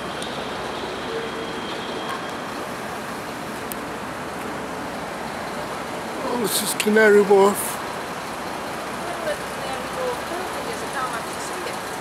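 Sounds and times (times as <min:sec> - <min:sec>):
road traffic hum: 0:00.0 - 0:12.0
faint voices of passers-by: 0:08.8 - 0:12.0.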